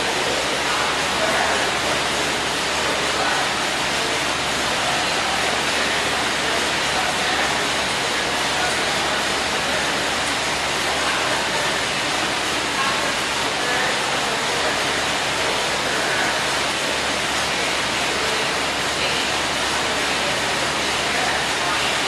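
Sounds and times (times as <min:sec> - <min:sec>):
faint voices: 0:00.0 - 0:22.0
fans rushing: 0:00.0 - 0:22.0.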